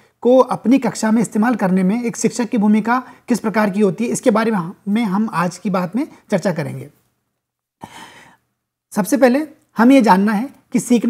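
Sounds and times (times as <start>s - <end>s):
man breathing: 7.8s - 8.6s.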